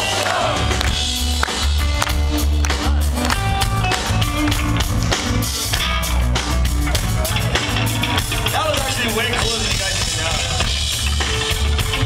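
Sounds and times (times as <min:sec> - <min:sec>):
live punk rock band: 0:00.0 - 0:12.0.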